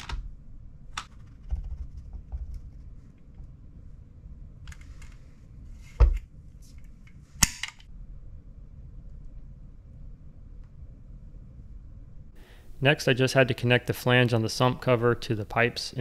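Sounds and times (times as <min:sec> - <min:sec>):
soft scraping and handling: 0:04.7 - 0:07.3.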